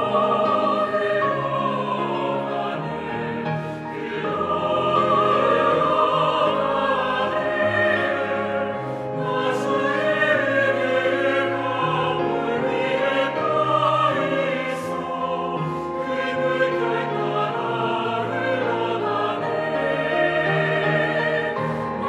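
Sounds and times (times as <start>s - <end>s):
choir accompaniment: 0.0s - 22.0s
mixed choir singing: 0.0s - 22.0s.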